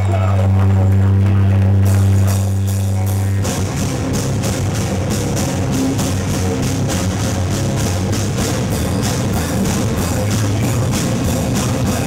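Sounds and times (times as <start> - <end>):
amplified low note droning: 0.0 - 12.0
band playing with drums: 0.0 - 12.0.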